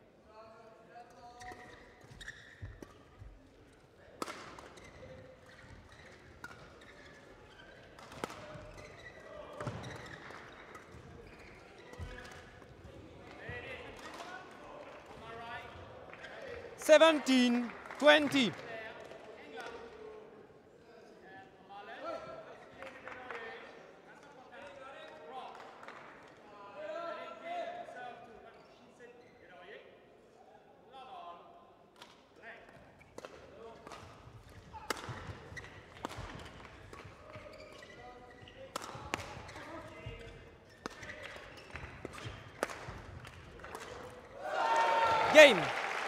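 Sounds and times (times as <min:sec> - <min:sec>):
faint voices in a hall: 0:00.0 - 0:46.0.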